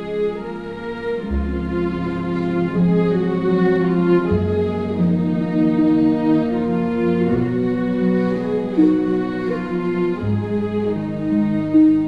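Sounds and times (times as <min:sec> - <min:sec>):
orchestra playing slow bowed strings: 0:00.0 - 0:12.0.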